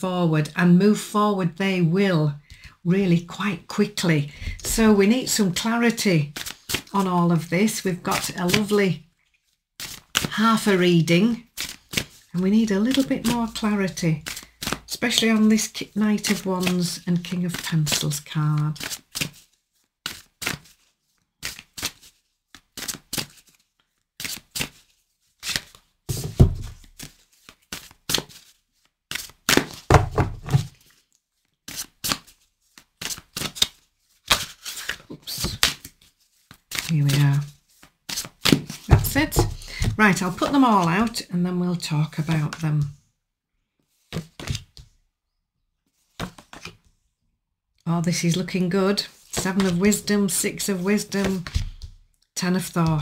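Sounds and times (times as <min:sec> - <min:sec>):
cards being shuffled: 0:05.9 - 0:07.0, 0:07.6 - 0:10.3, 0:11.5 - 0:14.9, 0:15.5 - 0:41.2, 0:46.0 - 0:46.9, 0:49.1 - 0:52.0
cards tapping and clicking: 0:38.1 - 0:40.5.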